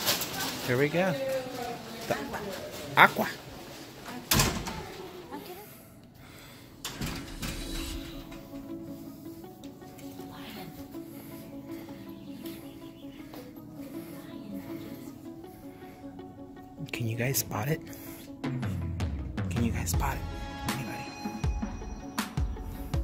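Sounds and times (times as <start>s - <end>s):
quiet background music: 0.0s - 23.0s.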